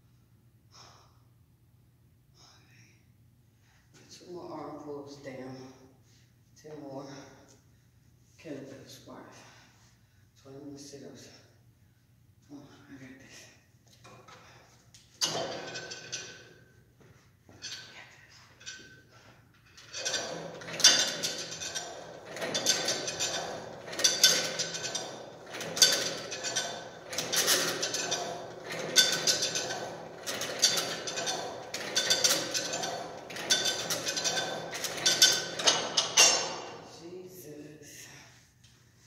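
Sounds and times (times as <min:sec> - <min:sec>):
weight stack clanking: 0:15.2 - 0:16.6, 0:19.7 - 0:36.9
cable running over pulleys: 0:19.7 - 0:36.8.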